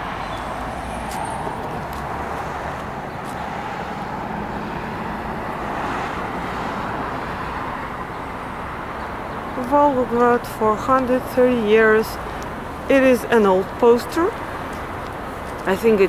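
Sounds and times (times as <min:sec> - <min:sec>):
cars passing on street: 0:00.0 - 0:16.0.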